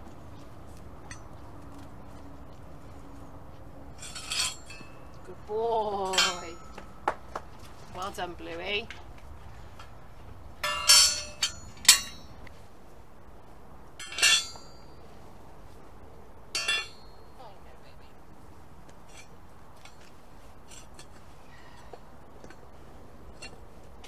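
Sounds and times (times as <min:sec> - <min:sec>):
metal tools clanking: 0:04.0 - 0:05.2, 0:05.8 - 0:06.9, 0:10.6 - 0:12.4, 0:14.0 - 0:15.0, 0:16.5 - 0:17.3, 0:19.0 - 0:22.7, 0:23.3 - 0:23.7.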